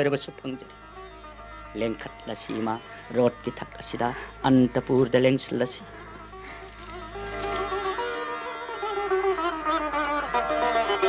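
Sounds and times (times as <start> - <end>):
sitar-style string drone: 0.0 - 11.0
man talking: 1.8 - 6.0.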